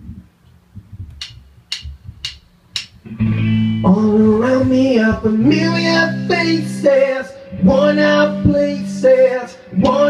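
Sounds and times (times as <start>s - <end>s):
drumsticks clicking together: 1.1s - 3.0s.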